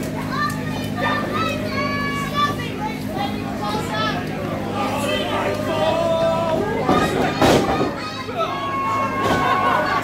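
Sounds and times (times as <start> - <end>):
children's voices: 0.0 - 10.0
low electrical hum: 0.0 - 10.0
spectators yelling and cheering: 0.0 - 10.0.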